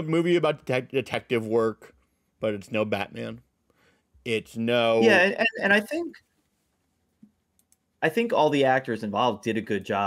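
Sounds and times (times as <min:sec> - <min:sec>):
man speaking: 0:00.0 - 0:03.4, 0:04.3 - 0:06.2, 0:08.0 - 0:10.0
faint clicks: 0:07.2 - 0:07.9.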